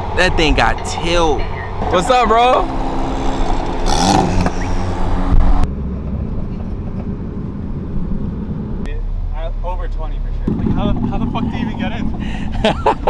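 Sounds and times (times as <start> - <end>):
car engine passing: 0.0 - 13.0
low engine rumble: 0.0 - 13.0.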